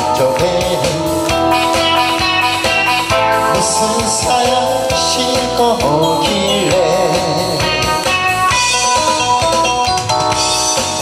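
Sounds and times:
amplified backing track with beat: 0:00.0 - 0:11.0
harmonica through a pa: 0:01.4 - 0:04.9.

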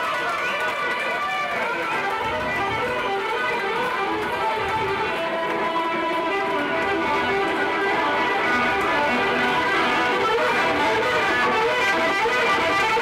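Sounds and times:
blues electric guitar music: 0:00.0 - 0:13.0.

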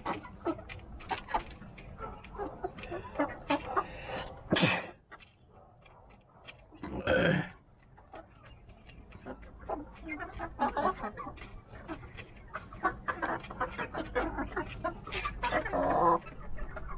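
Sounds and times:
hens clucking: 0:00.0 - 0:16.9.

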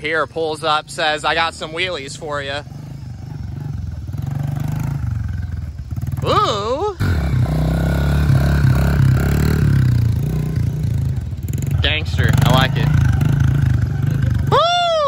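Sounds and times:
dirt bike engine running: 0:00.0 - 0:15.0
person whooping: 0:06.2 - 0:07.0, 0:14.3 - 0:15.0.

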